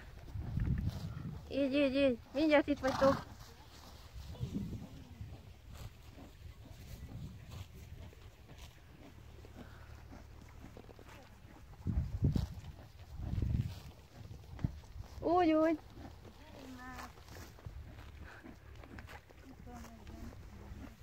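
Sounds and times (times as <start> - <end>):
horse chewing grass: 0.0 - 21.0
horse puffing: 0.0 - 21.0.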